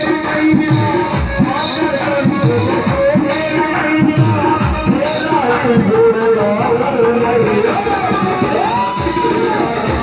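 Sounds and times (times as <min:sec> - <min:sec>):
devotional band with electronic keyboard: 0:00.0 - 0:10.0.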